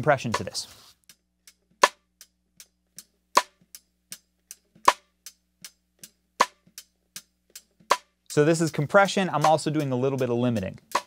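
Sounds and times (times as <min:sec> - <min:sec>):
hi-hat ticks: 0:00.0 - 0:11.0.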